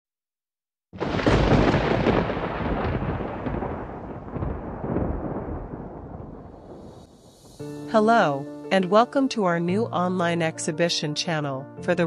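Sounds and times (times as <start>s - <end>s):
deep rumbling boom: 1.0s - 7.5s.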